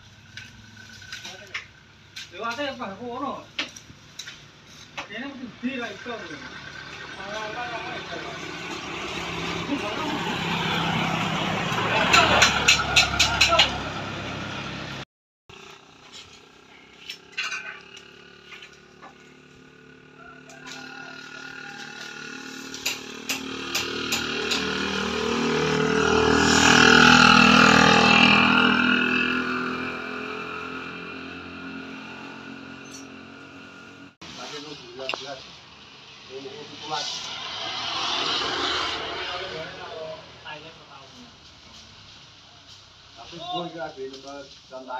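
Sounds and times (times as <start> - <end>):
vehicle engine passing: 4.7 - 15.0, 15.6 - 43.0.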